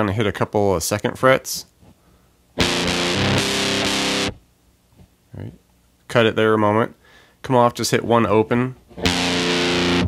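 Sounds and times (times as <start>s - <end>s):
fuzz-distorted electric guitar strumming: 2.6s - 4.4s, 9.0s - 10.0s.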